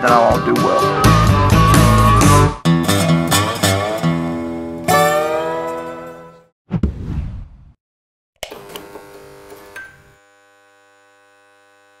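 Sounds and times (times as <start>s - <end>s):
electronic hum of held tones: 8.6s - 12.0s.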